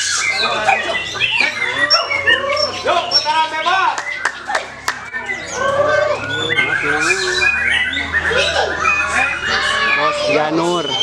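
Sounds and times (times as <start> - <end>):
birds singing whistled phrases: 0.0 - 11.0
people's voices: 0.0 - 11.0.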